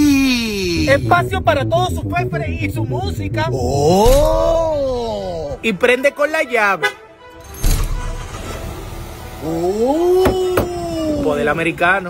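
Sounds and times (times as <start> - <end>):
car engine starting and running: 7.4 - 12.0.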